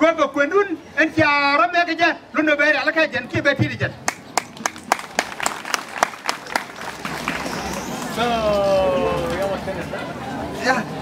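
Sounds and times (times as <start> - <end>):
audience clapping in rhythm: 4.1 - 8.2.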